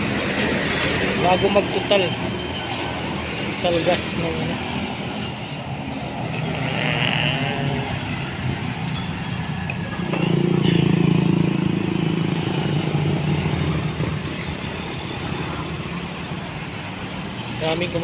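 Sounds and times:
truck engine passing: 0:00.0 - 0:17.4
cars passing: 0:00.0 - 0:18.0
motorcycle passing: 0:06.0 - 0:16.2.

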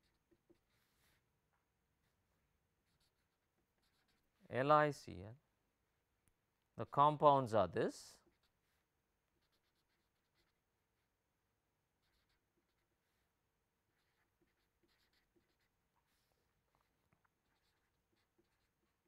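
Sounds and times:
marker scratching on paper: 0:00.0 - 0:01.3, 0:02.8 - 0:04.4, 0:08.2 - 0:11.1, 0:11.9 - 0:19.0.

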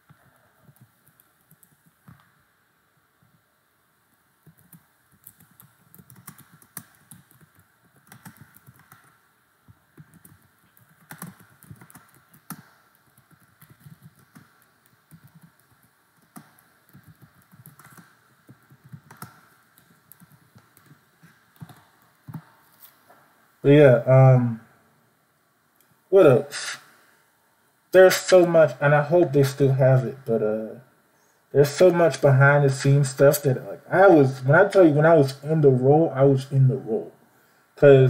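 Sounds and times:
computer keyboard typing: 0:00.2 - 0:02.3, 0:04.4 - 0:22.5.

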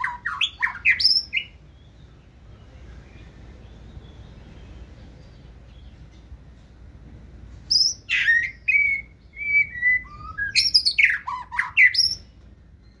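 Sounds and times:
bird singing whistled notes: 0:00.0 - 0:06.0, 0:07.7 - 0:13.0.

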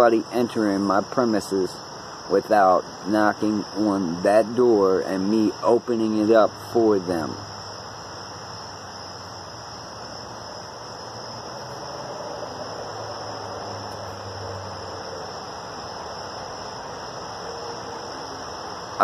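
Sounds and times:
crickets chirping: 0:00.0 - 0:19.0
low hum and hiss: 0:00.0 - 0:19.0.

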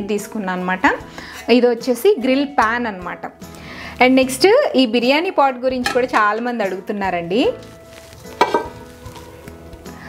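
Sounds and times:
cookware knocks: 0:05.8 - 0:06.4, 0:08.4 - 0:08.8.

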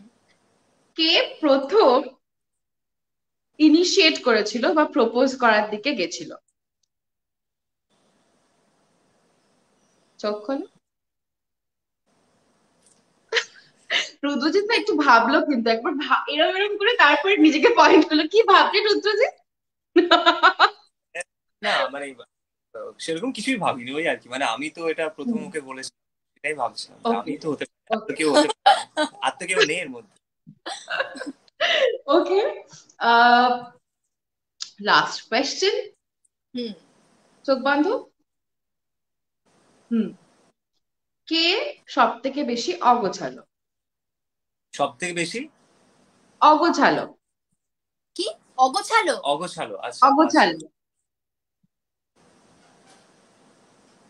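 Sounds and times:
woman's voice trailing off: 0:28.3 - 0:29.3.

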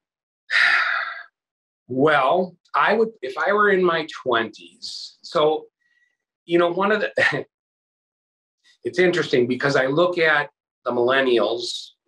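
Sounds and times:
man sighing: 0:00.5 - 0:01.2.

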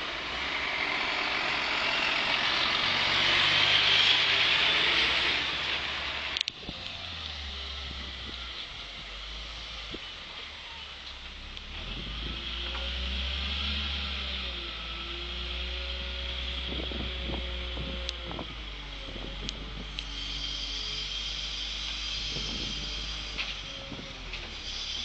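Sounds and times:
wheel loader diesel engine: 0:00.0 - 0:25.0.

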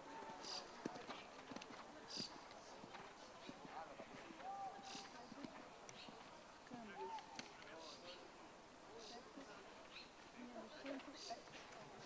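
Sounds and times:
faint voices: 0:00.0 - 0:12.0
horse hoofbeats on dirt: 0:00.8 - 0:04.6.

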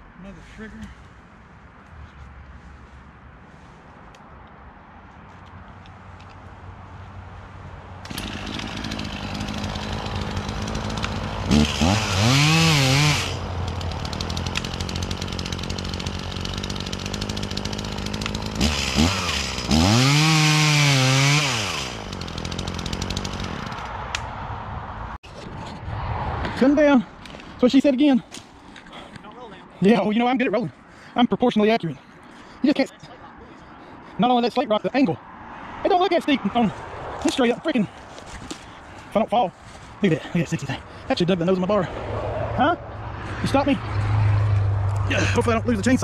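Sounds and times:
chainsaw idling and revving: 0:08.0 - 0:23.9, 0:45.0 - 0:46.0.

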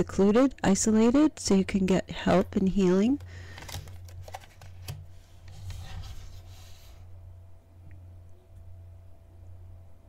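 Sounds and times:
cards rustling and sliding: 0:03.2 - 0:07.0.

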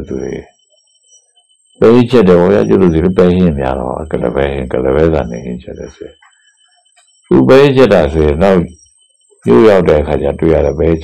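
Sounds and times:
man delivering a sermon: 0:00.0 - 0:00.5, 0:01.8 - 0:06.2, 0:07.3 - 0:08.8, 0:09.4 - 0:11.0.

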